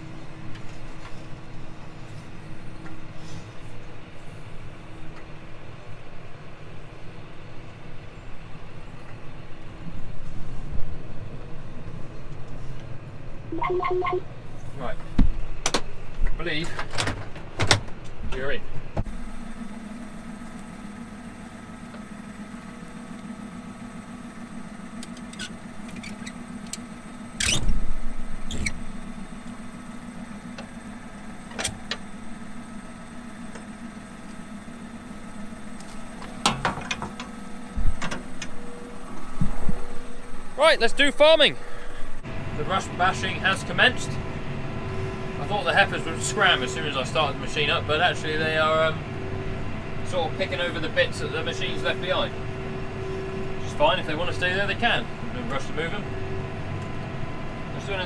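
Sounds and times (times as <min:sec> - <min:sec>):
tractor engine running: 0:00.0 - 0:58.0
metal clunks: 0:35.9 - 0:38.6.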